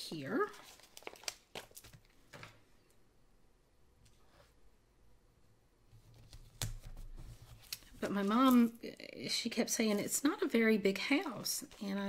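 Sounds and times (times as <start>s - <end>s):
sticker peeling paper crinkles: 0.5s - 2.0s.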